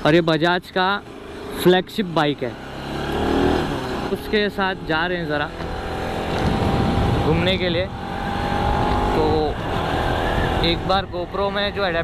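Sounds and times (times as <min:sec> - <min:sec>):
motorcycle engine running: 0:00.0 - 0:12.0
wind rumble: 0:05.7 - 0:12.0.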